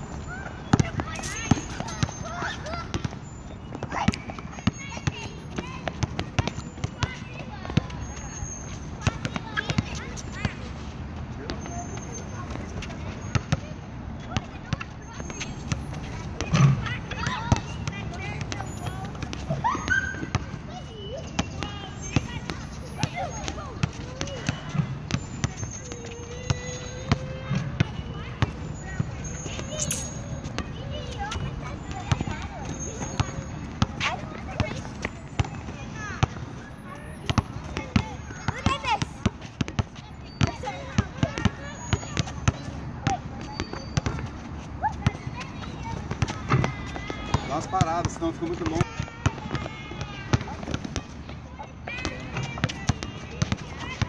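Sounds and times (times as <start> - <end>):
basketballs bouncing on asphalt: 0.0 - 54.0
children calling out: 0.1 - 10.7, 14.2 - 54.0.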